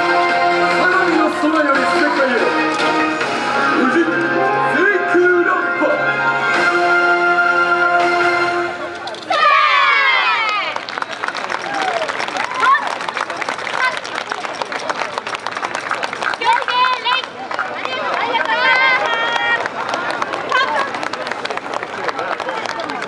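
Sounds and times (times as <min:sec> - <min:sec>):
crowd cheering: 0:09.2 - 0:23.0
voices shouting: 0:09.3 - 0:10.8
hand-clapping: 0:10.4 - 0:23.0.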